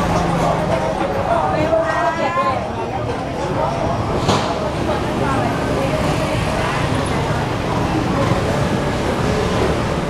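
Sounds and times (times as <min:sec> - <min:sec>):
people talking indistinctly: 0:00.0 - 0:09.5
road traffic rumble: 0:00.0 - 0:10.0.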